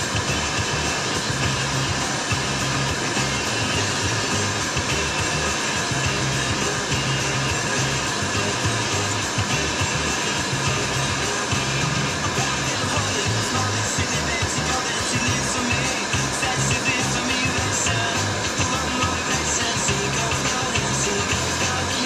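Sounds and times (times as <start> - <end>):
loud steady rushing hiss: 0.0 - 22.0
radio music with bass line: 0.0 - 22.0.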